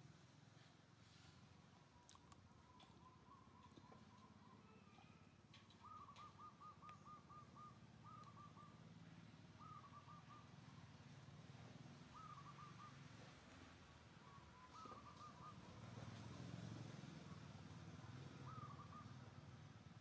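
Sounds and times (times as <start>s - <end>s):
faint bird calling: 1.9s - 11.2s, 12.0s - 19.6s.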